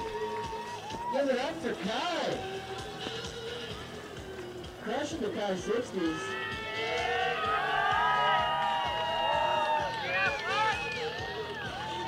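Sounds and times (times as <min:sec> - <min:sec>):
spectators cheering and whooping: 0:00.0 - 0:01.4, 0:06.2 - 0:12.0.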